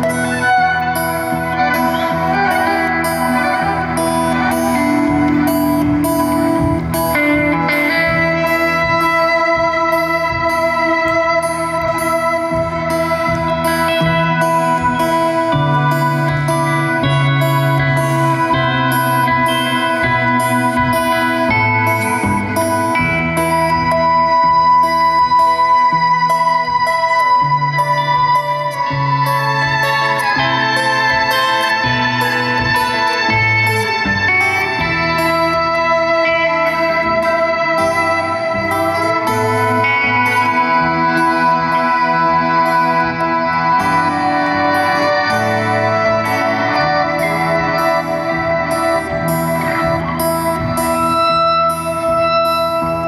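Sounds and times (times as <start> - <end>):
live band with droning electric guitar: 0.0 - 53.0
long held high tone: 0.0 - 53.0.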